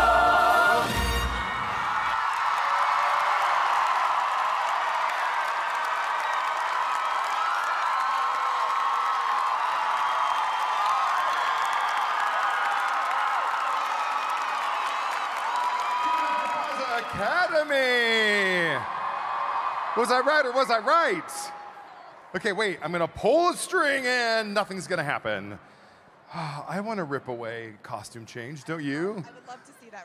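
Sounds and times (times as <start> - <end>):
whoops and shouts: 1.6 - 19.0
audience clapping: 1.8 - 21.2.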